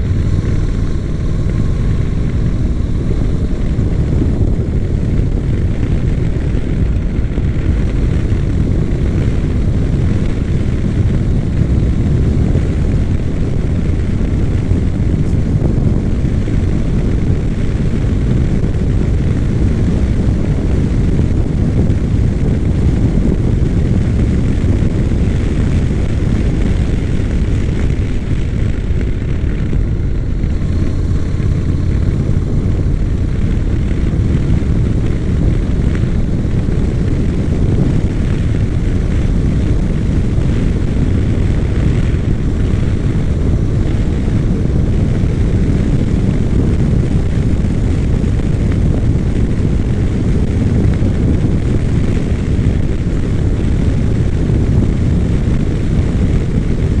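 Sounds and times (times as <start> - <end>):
motorcycle engine cruising: 0.0 - 57.0
wind rushing over microphone: 0.0 - 57.0.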